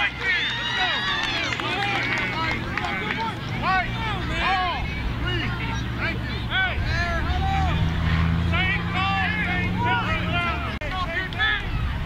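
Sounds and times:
voices shouting: 0.0s - 12.0s.

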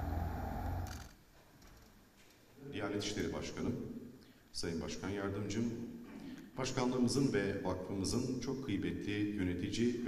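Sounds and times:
low outdoor rumble: 0.0s - 1.1s.

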